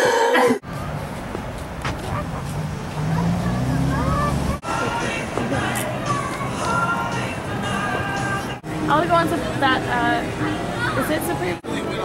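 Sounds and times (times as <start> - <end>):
vehicle engine humming: 0.6 - 12.0
faint voices: 1.9 - 12.0.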